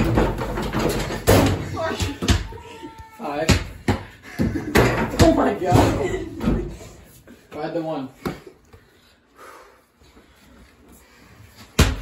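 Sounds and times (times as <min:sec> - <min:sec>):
people laughing: 0:04.2 - 0:07.1.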